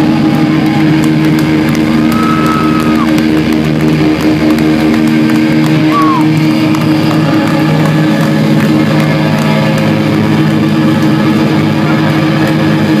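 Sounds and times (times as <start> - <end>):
electric guitar drone: 0.0 - 13.0.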